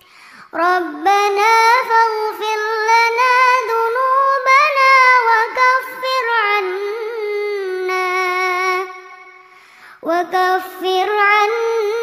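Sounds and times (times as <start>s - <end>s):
girl reciting melodically: 0.1s - 12.0s.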